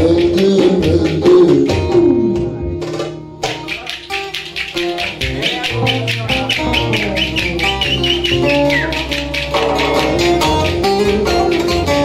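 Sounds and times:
folk dance band music: 0:00.0 - 0:12.0
wooden spoons clacking: 0:03.5 - 0:12.0.

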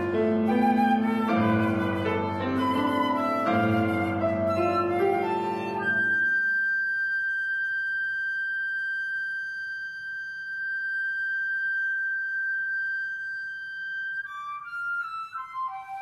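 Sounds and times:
piano chord: 0:00.0 - 0:06.4
flute holding long high note: 0:00.0 - 0:16.0.

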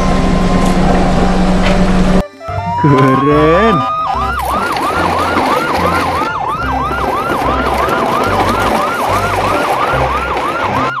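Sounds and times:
electronic yelp siren: 0:02.2 - 0:11.0.

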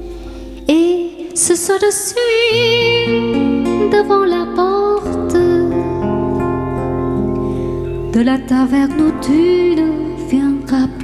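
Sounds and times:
person singing chanson: 0:00.0 - 0:07.0, 0:08.0 - 0:11.0
acoustic guitar chord: 0:02.6 - 0:11.0.

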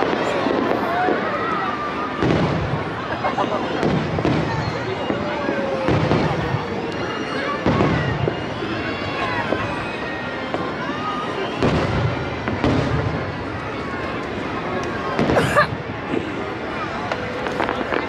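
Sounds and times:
fireworks bangs: 0:00.0 - 0:18.0
rumble of smaller fireworks bursts: 0:00.0 - 0:18.0.

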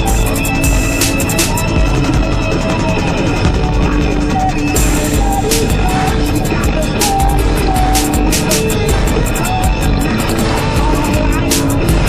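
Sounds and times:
cymbal strokes: 0:00.0 - 0:12.0
deep bass beat: 0:00.0 - 0:12.0.

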